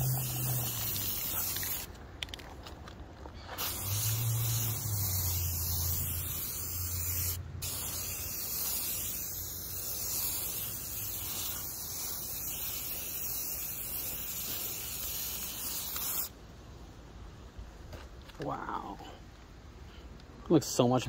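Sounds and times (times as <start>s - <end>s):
spray can hissing: 0.0s - 1.9s, 3.5s - 16.4s.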